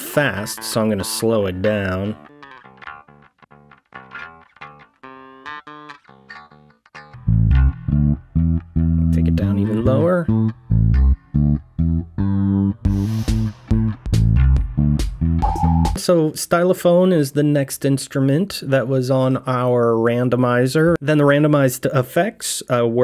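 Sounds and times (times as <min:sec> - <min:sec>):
distorted electric bass guitar: 0:00.4 - 0:16.0.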